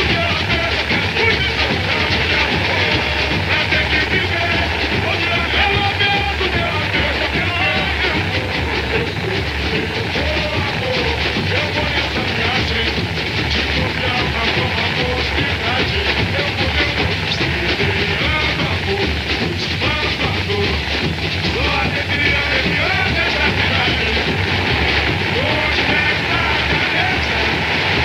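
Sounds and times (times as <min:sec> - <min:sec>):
samba drums and percussion: 0:00.0 - 0:28.0
voices singing along: 0:00.0 - 0:28.0.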